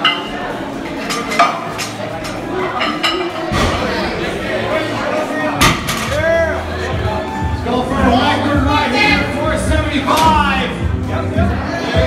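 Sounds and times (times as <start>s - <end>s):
crowd talking: 0.0s - 12.0s.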